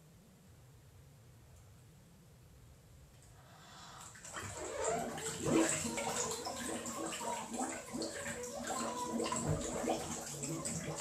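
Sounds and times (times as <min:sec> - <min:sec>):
water sloshing and bubbling: 0:04.0 - 0:11.0.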